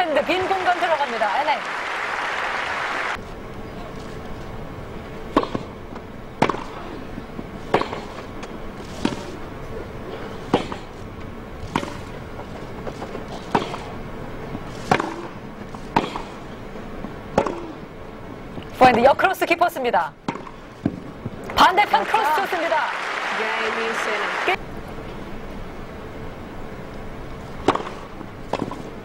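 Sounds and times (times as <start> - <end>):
crowd hush: 1.6 - 4.0
racquet hitting tennis ball: 5.2 - 9.4, 10.4 - 11.0, 11.7 - 17.9, 20.2 - 21.4, 27.6 - 29.0.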